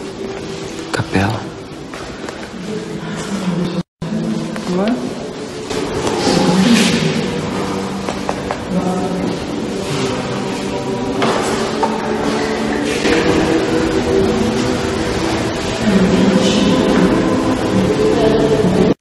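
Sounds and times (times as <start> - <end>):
music with slow held chords: 0.0 - 19.0
steady noisy background: 0.0 - 19.0.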